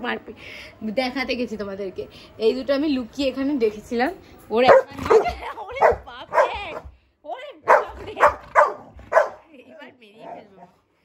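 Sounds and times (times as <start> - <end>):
dog barking: 4.6 - 6.9, 7.7 - 9.5.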